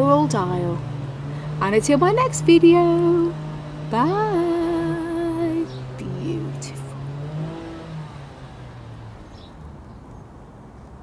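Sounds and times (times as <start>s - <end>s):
woman's voice: 0.0s - 0.8s, 1.6s - 6.9s.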